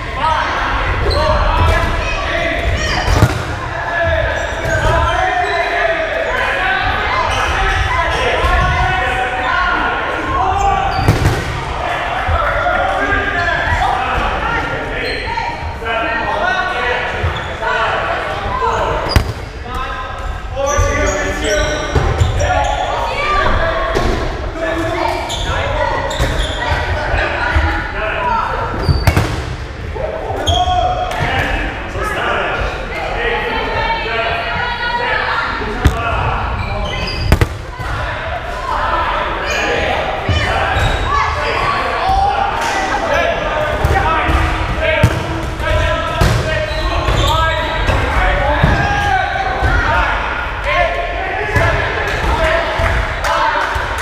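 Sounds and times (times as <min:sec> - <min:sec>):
players shouting and chattering: 0:00.0 - 0:54.0.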